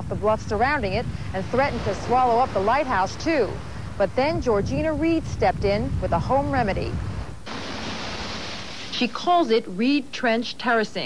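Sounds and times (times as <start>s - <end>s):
low wind rumble: 0.0s - 9.2s
ocean surf rushing: 0.4s - 9.0s.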